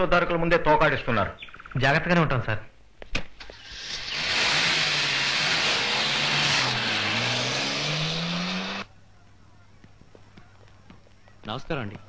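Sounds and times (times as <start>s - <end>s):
road noise: 3.4s - 11.4s
car engine revving: 3.5s - 8.9s.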